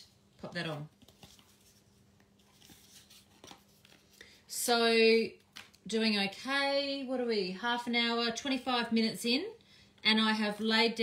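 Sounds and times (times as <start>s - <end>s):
cardboard rustling on paper: 0.6s - 4.2s.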